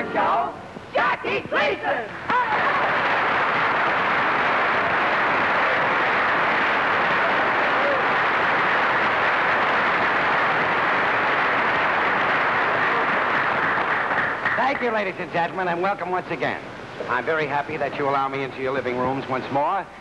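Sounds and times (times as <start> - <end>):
audience applauding: 2.3 - 15.2.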